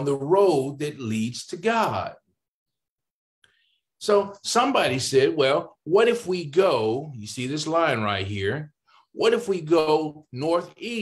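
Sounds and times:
man speaking: 0.0 - 2.3, 4.0 - 11.0.

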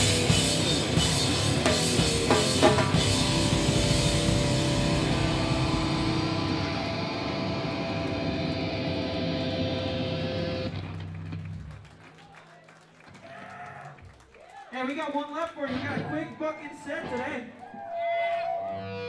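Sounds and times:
electric guitar and bass chord: 0.0 - 11.0
low bass note: 3.2 - 9.2.

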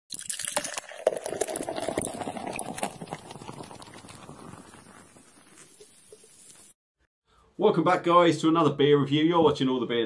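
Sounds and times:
beer pouring into a glass: 0.1 - 6.7.

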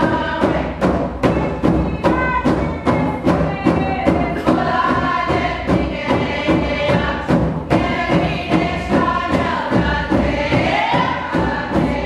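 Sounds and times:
steady drumbeat: 0.0 - 12.0
women singing chant in unison: 0.0 - 12.0.

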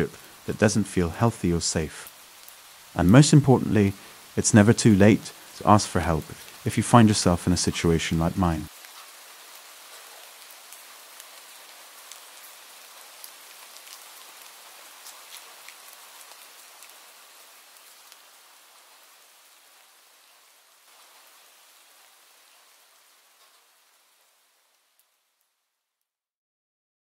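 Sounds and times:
raindrop ticks: 0.0 - 9.2, 9.8 - 19.0, 23.3 - 23.7, 24.7 - 25.5
faint steady rain: 0.0 - 26.2.

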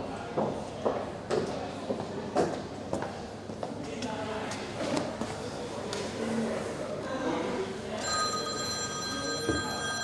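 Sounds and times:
phone ringtone: 8.0 - 10.0.

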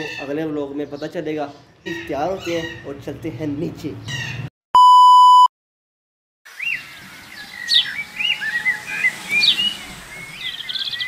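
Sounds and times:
birds chirping: 0.0 - 4.5, 6.5 - 11.0.

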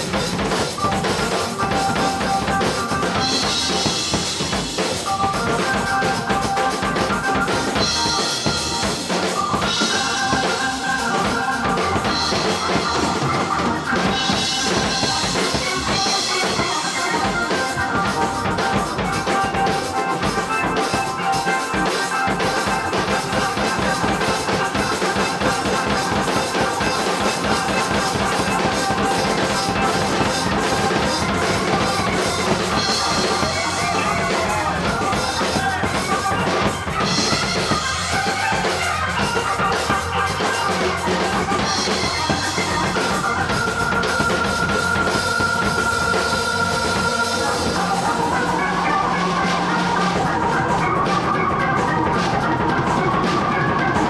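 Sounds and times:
bass guitar: 0.0 - 54.0
drum kit beat: 0.0 - 54.0
guitars: 0.0 - 54.0
organ: 0.0 - 54.0.

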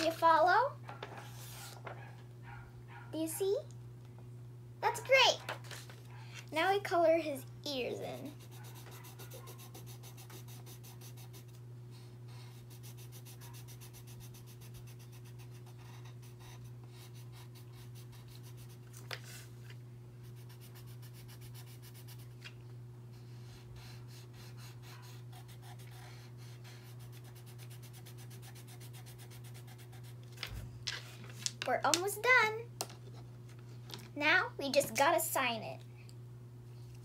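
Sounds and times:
steady low hum: 0.0 - 37.0
pencil scratching on paper: 8.1 - 11.6, 12.3 - 18.8, 20.2 - 22.4, 23.5 - 30.2.

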